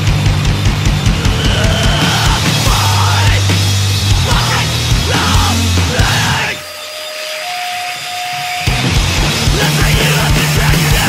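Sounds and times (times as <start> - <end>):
drums and distorted band: 0.0 - 11.0
feedback tone: 0.8 - 11.0.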